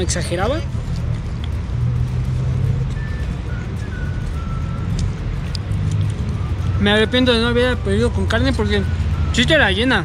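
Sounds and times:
faint high melody: 2.9s - 5.5s.

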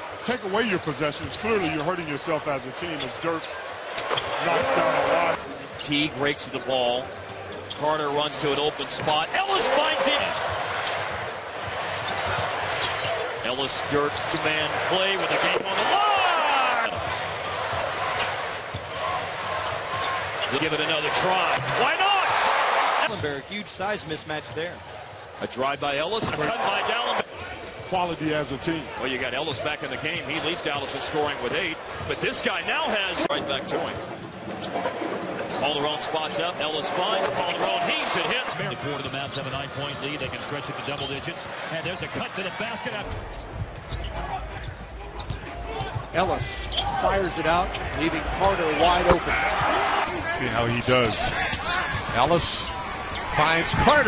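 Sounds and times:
arena crowd noise: 0.0s - 54.0s.

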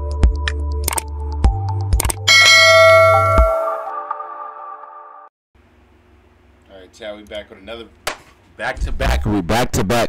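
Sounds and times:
bright bell chime: 2.3s - 4.7s.

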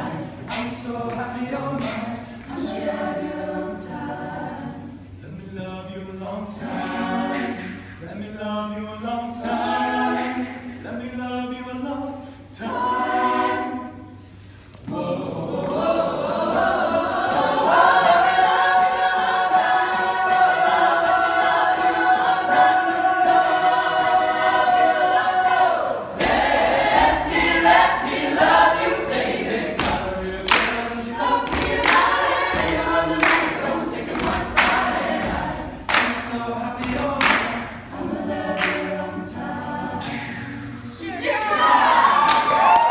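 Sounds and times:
a cappella group singing: 0.0s - 42.9s
sharp rhythmic percussive hits: 0.4s - 2.3s, 26.1s - 39.0s.

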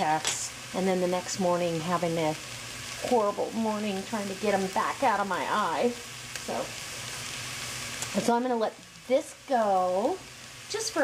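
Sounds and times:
meat and onions sizzling in a pot: 0.0s - 11.0s.

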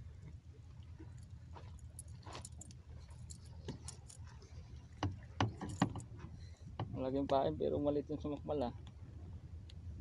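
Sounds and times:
steady low rumble: 0.0s - 5.4s, 6.0s - 10.0s
fishing gear clicks and rattles: 1.1s - 4.4s, 5.4s - 6.4s.

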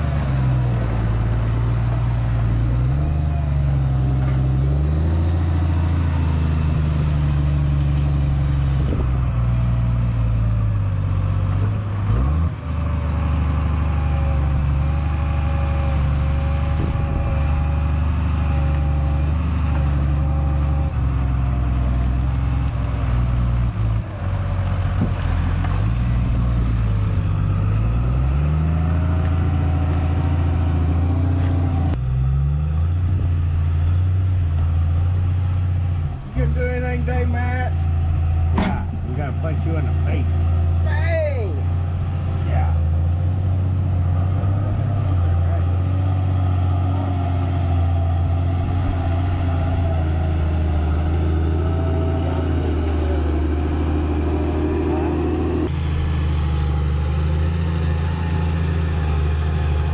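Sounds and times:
diesel engine under load: 0.0s - 59.9s
steady engine drone: 0.0s - 59.9s.

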